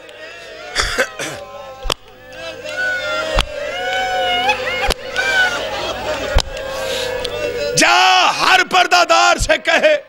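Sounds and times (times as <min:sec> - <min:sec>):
faint wailing voices: 0:00.0 - 0:10.0
man coughing: 0:00.8 - 0:01.4
sharp slap: 0:01.8 - 0:02.1, 0:03.4 - 0:03.6.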